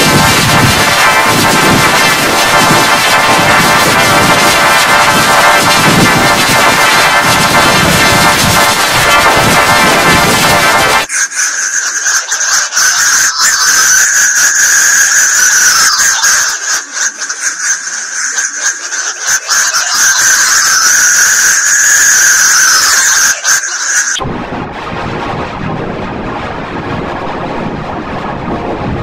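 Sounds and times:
crackling clicks: 0.0 - 11.1
noisy rushing sound: 0.0 - 11.2, 24.2 - 29.0
distorted high-pitched squeal: 0.0 - 24.5.

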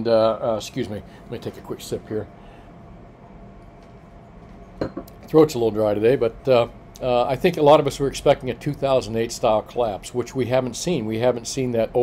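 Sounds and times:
low steady hum: 0.0 - 12.0
cup clinking: 4.8 - 5.2.

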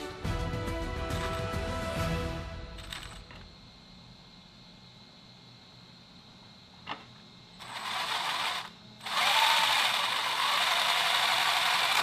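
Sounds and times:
electric motor gear whir: 7.6 - 12.0.

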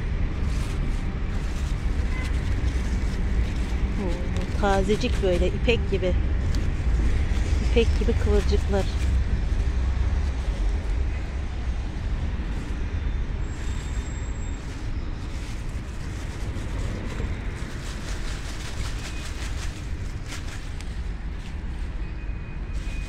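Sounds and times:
steady low rumble: 0.0 - 23.0
lettuce leaves rustling and snapping: 0.4 - 10.9, 14.7 - 22.0.

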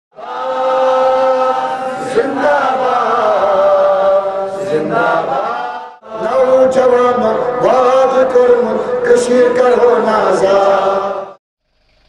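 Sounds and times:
person chanting a long note: 0.2 - 5.2.

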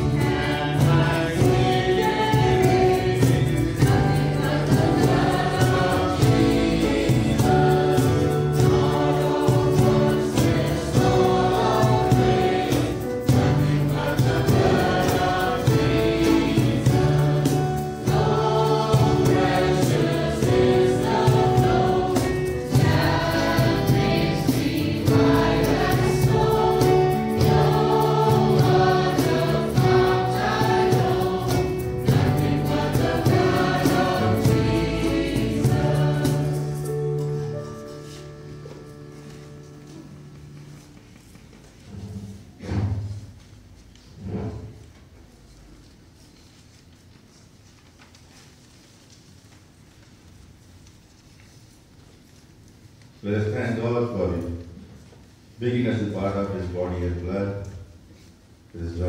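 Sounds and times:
choir singing a hymn: 0.0 - 43.4, 44.1 - 44.9.

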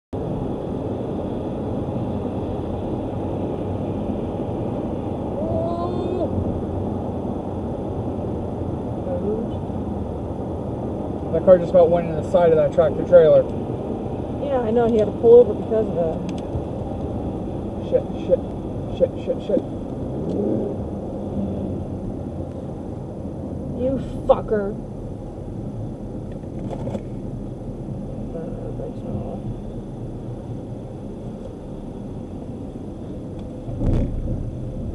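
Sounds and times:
road and engine noise in vehicle: 0.1 - 34.9
faint voice: 5.4 - 6.3.

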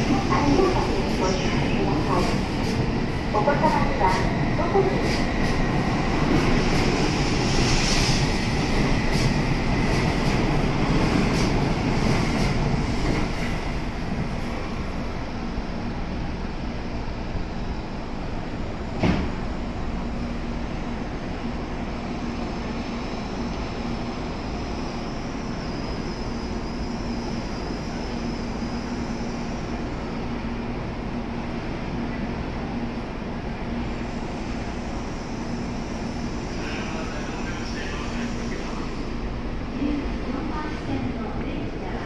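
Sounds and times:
train hum at platform: 0.0 - 42.0.

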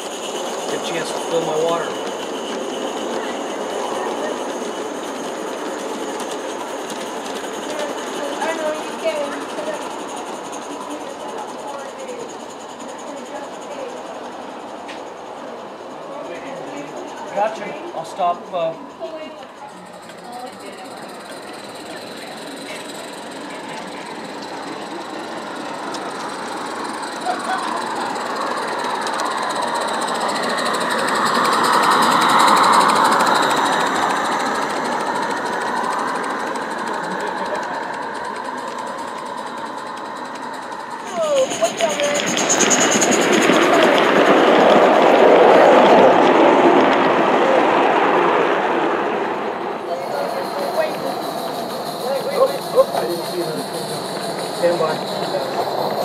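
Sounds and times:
model train wheels rattling: 0.0 - 48.4, 49.8 - 56.0.

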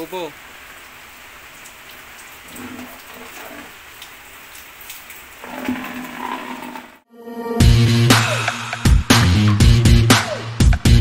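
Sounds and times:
rain on a hard surface: 0.0 - 7.0
water dripping: 0.0 - 7.0.

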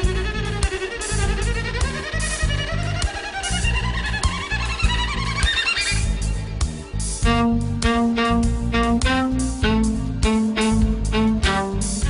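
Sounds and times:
bass notes: 0.0 - 12.0
violin melody: 0.0 - 12.0.

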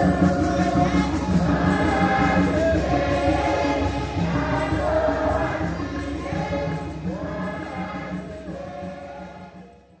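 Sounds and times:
choir singing: 0.0 - 9.8.

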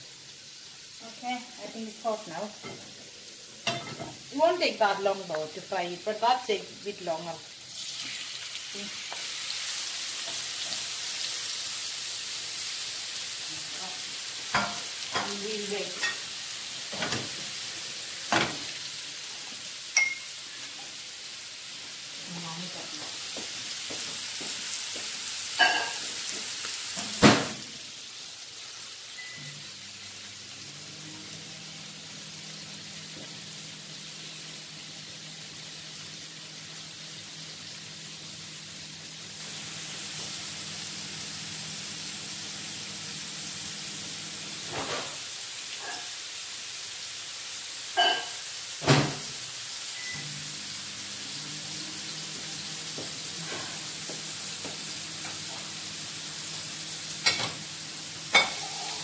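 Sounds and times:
prawns sizzling in hot oil: 0.0 - 59.0.

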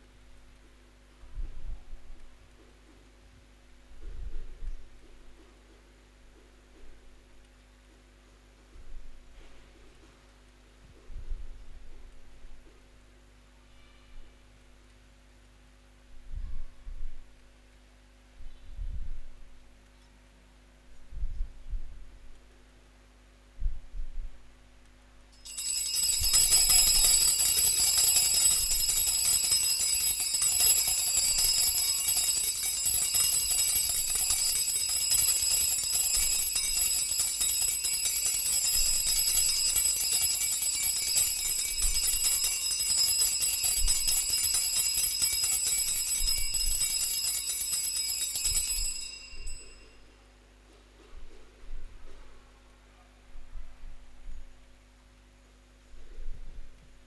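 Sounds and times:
altar bells ringing: 25.4 - 50.3.

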